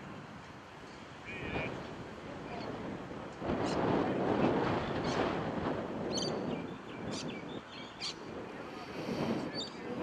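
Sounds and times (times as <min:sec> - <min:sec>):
open-air background noise: 0:00.0 - 0:10.0
bird chirping: 0:06.1 - 0:08.2.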